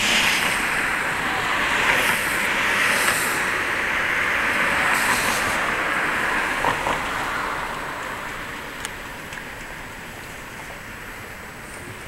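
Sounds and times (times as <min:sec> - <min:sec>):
road traffic: 0:00.0 - 0:12.0.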